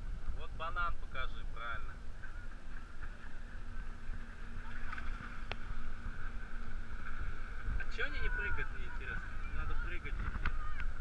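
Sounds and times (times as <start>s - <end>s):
distant motorboat drone: 0.0s - 11.0s
wind on microphone: 0.0s - 11.0s
water slapping against floats: 4.6s - 5.8s.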